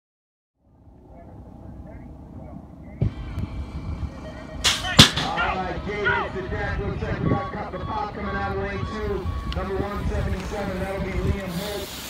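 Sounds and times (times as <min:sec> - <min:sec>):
outdoor background noise: 0:00.6 - 0:12.0.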